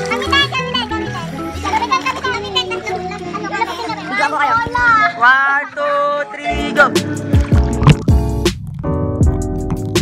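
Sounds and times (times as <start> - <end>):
children talking and calling out: 0.0 - 6.8
background music: 0.0 - 10.0.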